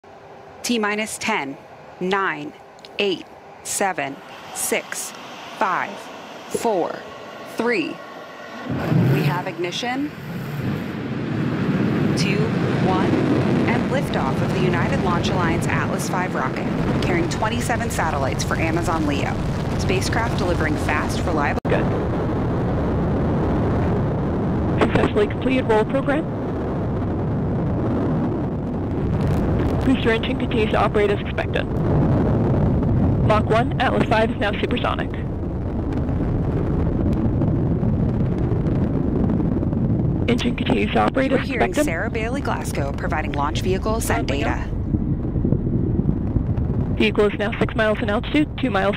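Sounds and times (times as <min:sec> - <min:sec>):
rocket engine deep rumble: 0:00.0 - 0:48.9.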